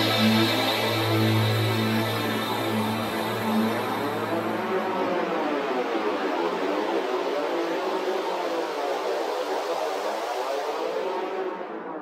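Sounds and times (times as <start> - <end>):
ambient electronic music: 0.0 - 12.0.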